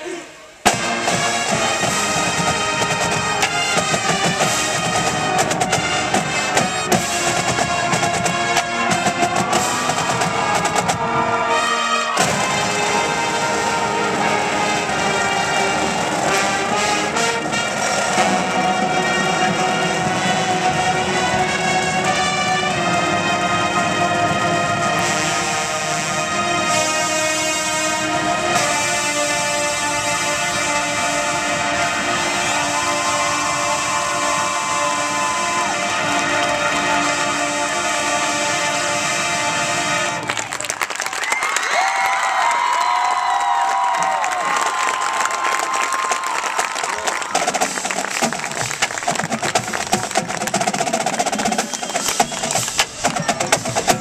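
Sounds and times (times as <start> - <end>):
brass sustained chords: 0.5 - 40.6
drumline: 0.6 - 54.0.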